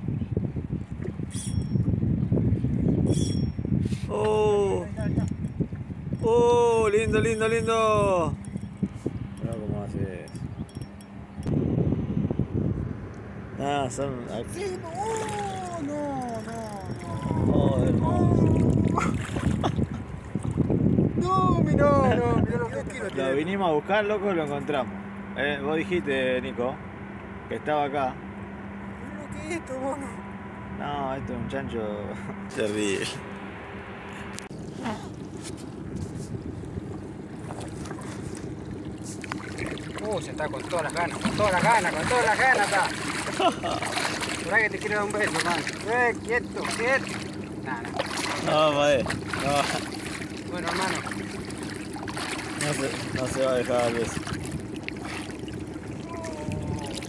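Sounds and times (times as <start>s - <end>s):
wind buffeting microphone: 0.0s - 23.8s, 34.2s - 57.0s.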